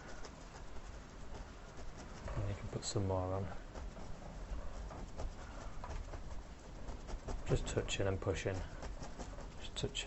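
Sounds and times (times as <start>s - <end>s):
brush scratching on canvas: 0.0s - 10.0s
low steady hum: 0.0s - 10.0s.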